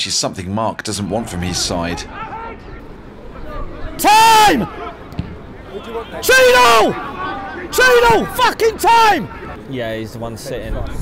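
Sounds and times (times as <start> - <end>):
players shouting: 1.0 - 10.5.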